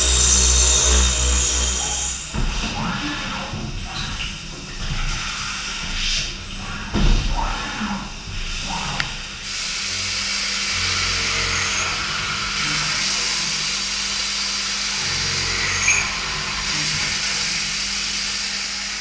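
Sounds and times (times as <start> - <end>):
low machine hum: 0.0 - 19.0.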